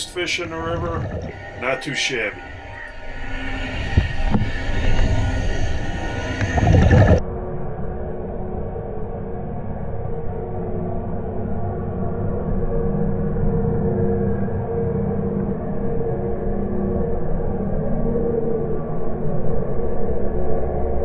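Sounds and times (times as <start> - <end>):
dull steady drone: 0.0 - 21.0
underwater rushing and rumbling: 0.0 - 21.0.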